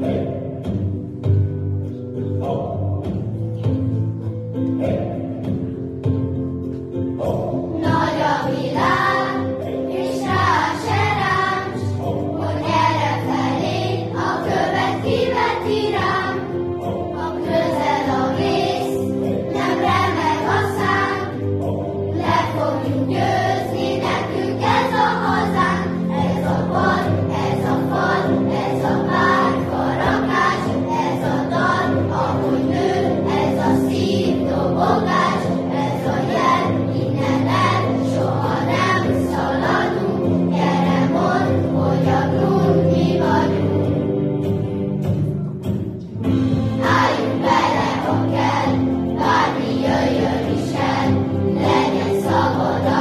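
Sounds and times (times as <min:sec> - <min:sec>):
children's choir singing: 0:00.0 - 0:01.4, 0:04.5 - 0:06.1, 0:07.0 - 0:53.0
instrumental accompaniment: 0:00.0 - 0:53.0.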